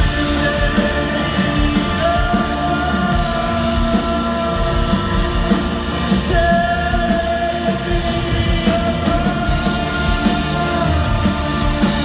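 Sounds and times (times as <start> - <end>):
rock band playing: 0.0 - 12.0
steady drum beat: 0.0 - 12.0.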